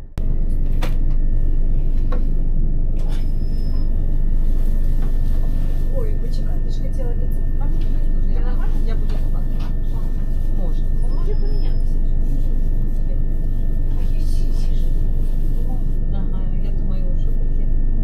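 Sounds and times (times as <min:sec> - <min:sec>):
thin high whine: 0:00.0 - 0:18.0
train running rumble: 0:03.0 - 0:17.3.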